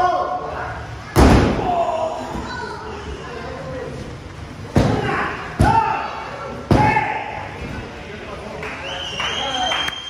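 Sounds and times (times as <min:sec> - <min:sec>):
people shouting: 0:04.8 - 0:07.5.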